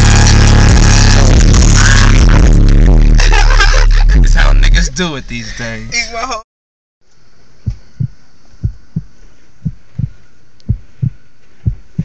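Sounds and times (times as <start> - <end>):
deep bass kick drum: 0.0 - 3.3, 7.6 - 12.0
rap beat: 0.0 - 6.2.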